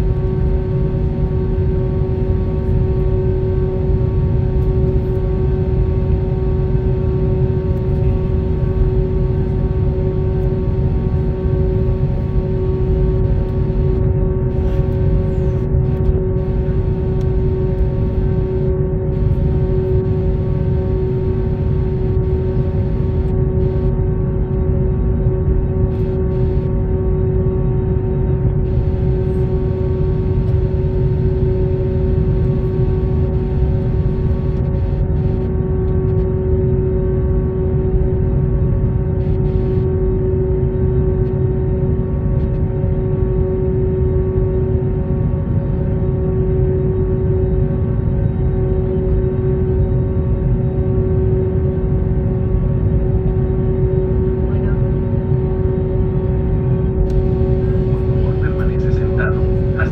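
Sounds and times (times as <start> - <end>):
aircraft cabin engine hum: 0.0 - 59.9.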